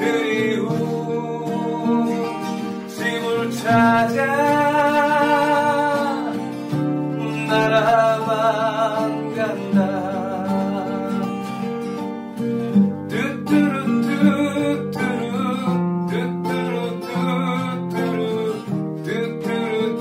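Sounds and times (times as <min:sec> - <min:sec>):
acoustic guitar plucked chords: 0:00.0 - 0:20.0.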